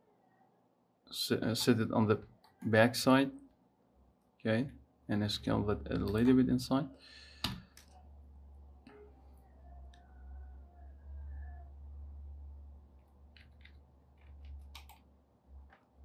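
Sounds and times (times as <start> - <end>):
keyboard key presses: 13.3 - 15.0
computer mouse clicks: 13.3 - 15.1.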